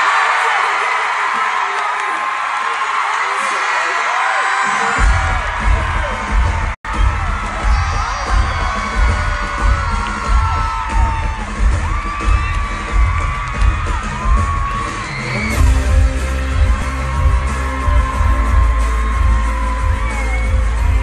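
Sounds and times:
crowd shrieking and whooping: 0.0 - 21.0
heavy bass beat: 5.0 - 21.0
sustained music chords: 15.6 - 21.0.

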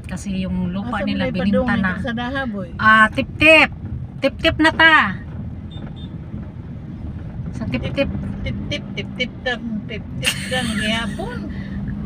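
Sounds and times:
vehicle engine and tyres rumbling: 0.0 - 12.0.

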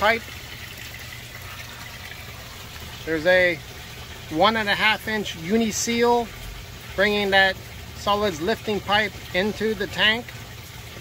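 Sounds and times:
water trickling through pipes: 0.0 - 11.0.

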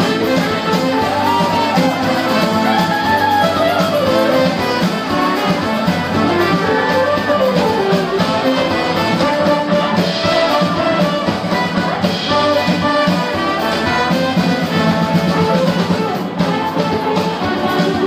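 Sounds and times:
drums: 0.0 - 18.0
electric guitar: 0.0 - 18.0
trombone and saxophone: 0.0 - 18.0.

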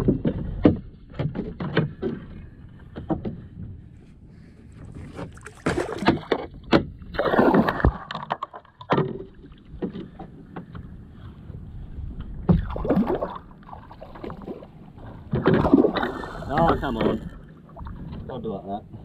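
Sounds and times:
water splashing against kayak hull: 0.0 - 18.5
knocks on hull: 5.1 - 10.8, 12.4 - 12.8, 15.3 - 17.2.

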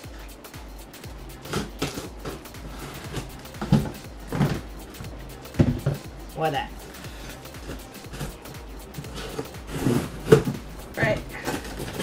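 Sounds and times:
background music: 0.0 - 12.0
cardboard knocks and scrapes: 1.4 - 6.1, 7.2 - 12.0.

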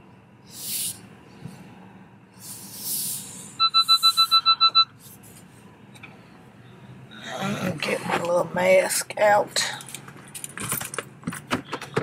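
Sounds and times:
short hiss: 2.4 - 3.5
rapid high electronic beeps: 3.6 - 4.9.

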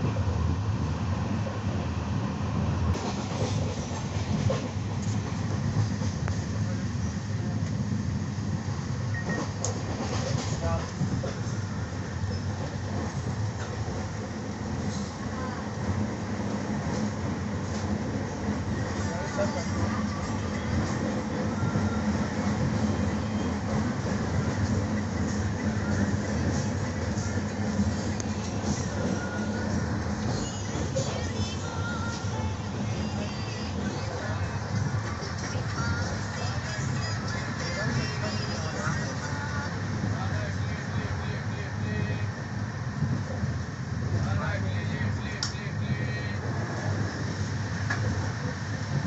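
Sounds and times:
train rumbling and rattling: 0.0 - 49.0.

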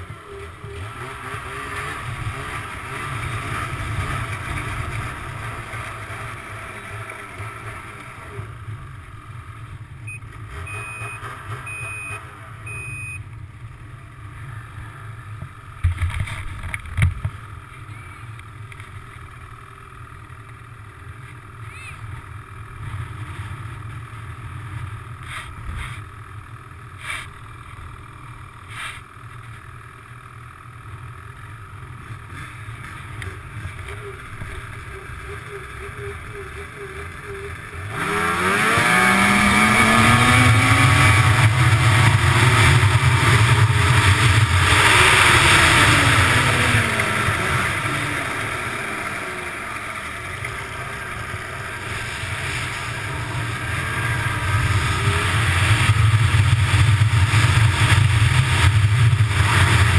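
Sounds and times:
snowmobile engine at low revs: 0.0 - 59.9
short high beeps: 10.1 - 13.2, 21.7 - 22.0
voices: 33.2 - 38.0.

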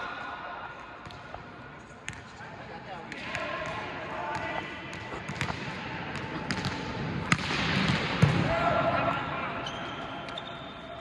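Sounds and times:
volleyball slap echoing: 3.1 - 8.6.

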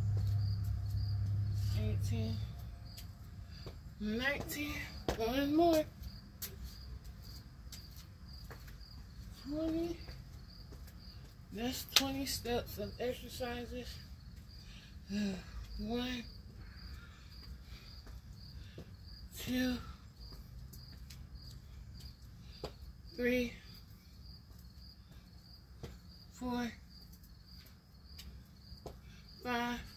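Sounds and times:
low outdoor rumble: 0.0 - 8.3
cricket chirping: 0.0 - 29.9.

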